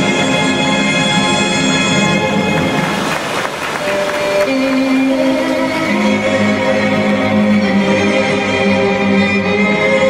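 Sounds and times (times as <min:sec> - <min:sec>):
orchestral music: 0:00.0 - 0:10.0
sustained string notes: 0:00.0 - 0:10.0.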